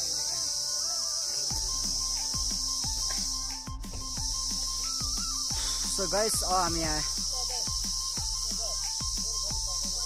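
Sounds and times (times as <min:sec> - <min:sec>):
high-pitched insect drone: 0:00.0 - 0:10.0
background music with deep beat: 0:01.4 - 0:10.0
person speaking: 0:05.8 - 0:07.3.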